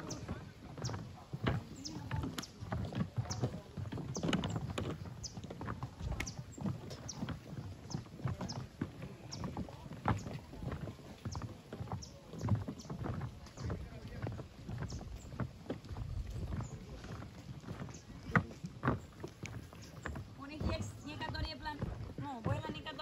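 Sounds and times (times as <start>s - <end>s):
wind rumbling on microphone: 0.0s - 23.0s.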